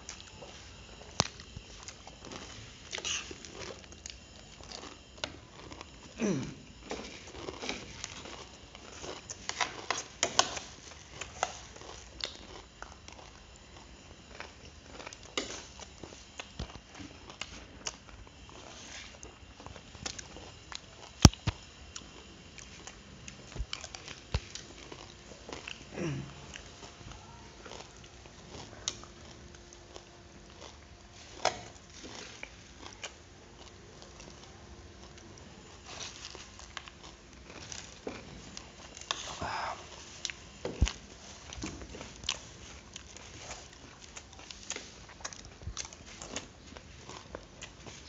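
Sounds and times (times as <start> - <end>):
chewing: 0.0 - 48.0
person making falling vocal sound: 6.2 - 6.6.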